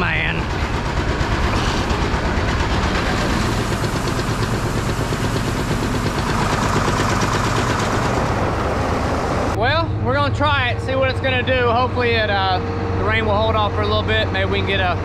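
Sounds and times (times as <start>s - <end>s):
auger mechanical drone: 0.0s - 15.0s.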